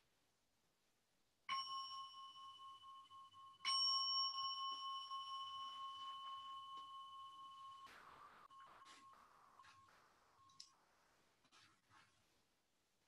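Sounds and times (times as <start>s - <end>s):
meditation bell ringing: 1.5s - 10.8s.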